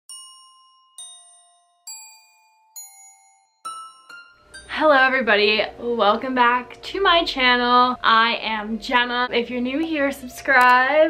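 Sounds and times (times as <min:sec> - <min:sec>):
bell-like chime notes: 0:00.1 - 0:04.8.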